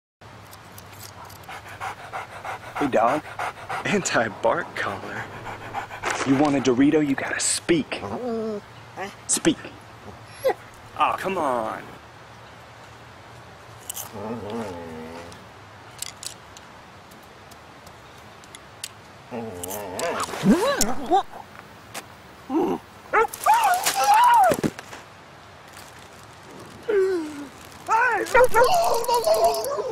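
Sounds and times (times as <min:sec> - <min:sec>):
dog panting: 0:01.2 - 0:07.2
faint crackles: 0:23.1 - 0:29.9.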